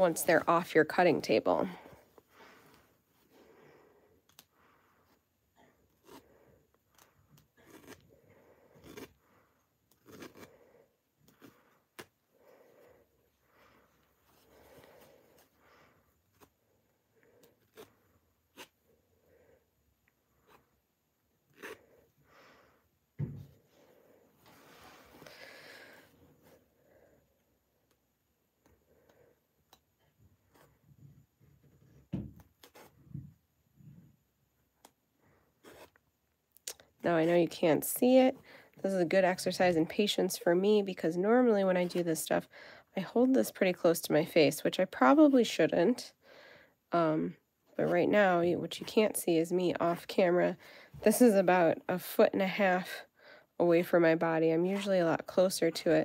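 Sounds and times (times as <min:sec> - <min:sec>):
soft thumps: 0:23.2 - 0:23.6.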